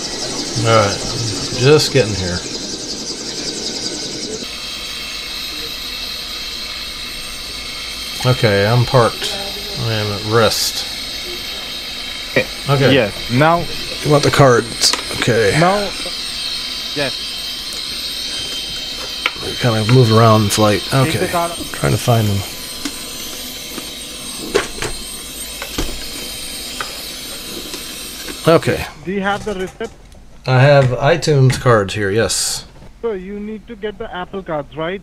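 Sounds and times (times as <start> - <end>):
faint high steady tones: 0.0 - 35.0
steady hiss: 0.0 - 35.0.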